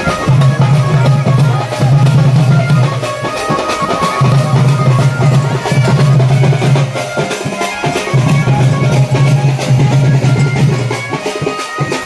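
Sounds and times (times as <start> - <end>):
band dance music: 0.0 - 12.0.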